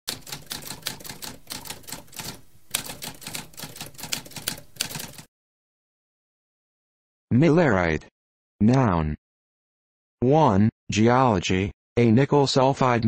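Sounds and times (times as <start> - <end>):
typewriter keystroke clacks: 0.1 - 5.3.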